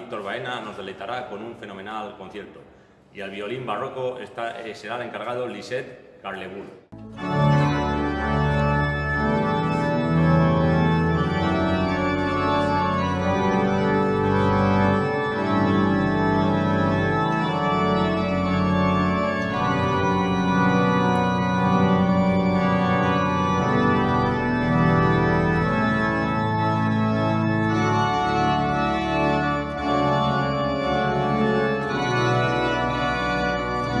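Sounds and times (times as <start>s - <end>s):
pipe organ playing chords: 6.9s - 34.0s.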